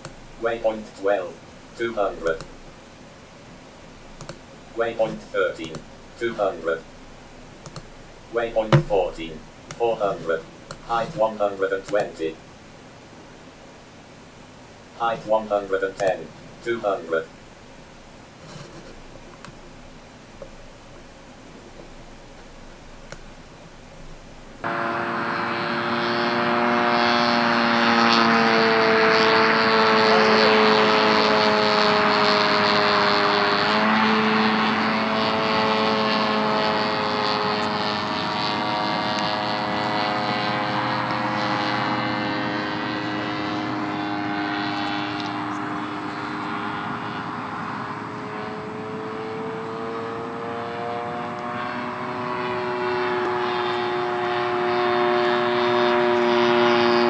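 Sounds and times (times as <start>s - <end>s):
drone engine and propeller: 24.6s - 57.0s.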